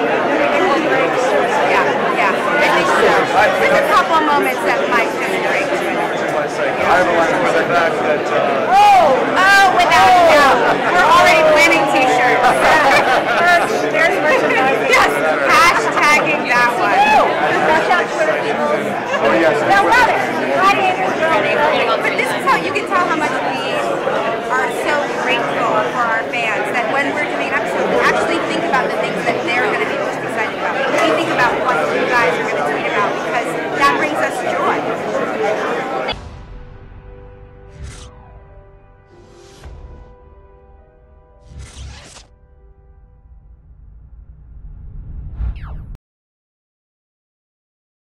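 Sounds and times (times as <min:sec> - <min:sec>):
people talking close to microphone: 0:00.0 - 0:36.2
crowd chatter: 0:00.0 - 0:37.4.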